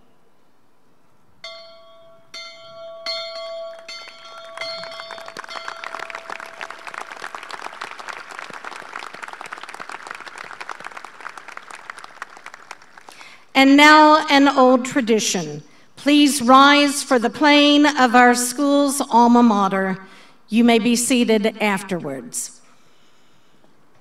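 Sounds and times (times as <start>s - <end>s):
brass bell ringing: 1.4s - 7.4s
applause: 3.7s - 13.5s.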